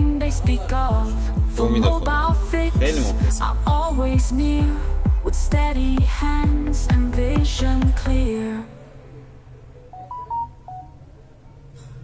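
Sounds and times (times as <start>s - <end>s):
short electronic beeps: 9.9s - 11.0s.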